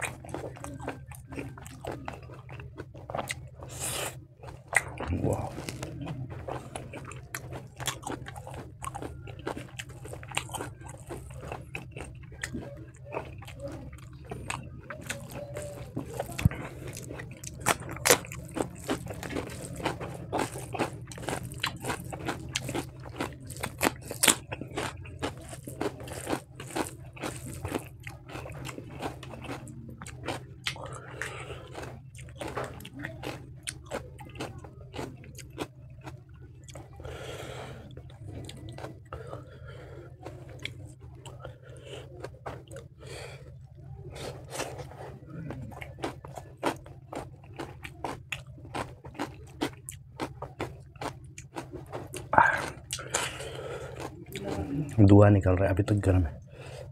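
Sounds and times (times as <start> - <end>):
chewing and biting: 0.0 - 56.9
steady low hum: 0.0 - 56.9.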